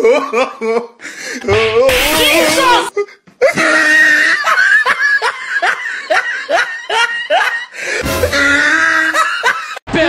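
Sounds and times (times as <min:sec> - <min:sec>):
music: 0:08.0 - 0:08.8.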